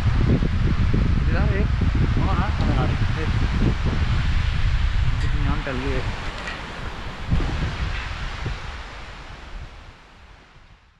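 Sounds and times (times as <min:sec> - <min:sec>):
wind buffeting microphone: 0:00.0 - 0:10.9.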